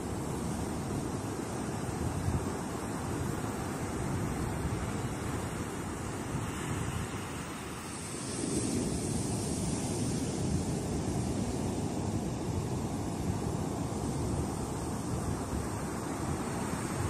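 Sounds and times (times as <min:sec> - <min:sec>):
surf breaking on a beach: 0:00.0 - 0:17.0.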